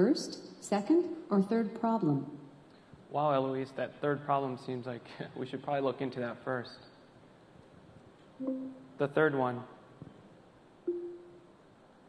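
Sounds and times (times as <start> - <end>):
short single-pitched tone: 8.4 - 8.9, 10.9 - 11.4.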